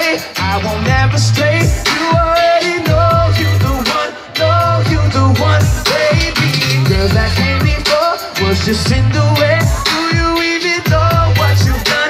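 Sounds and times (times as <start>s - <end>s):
live pop music over loudspeakers: 0.0s - 12.0s.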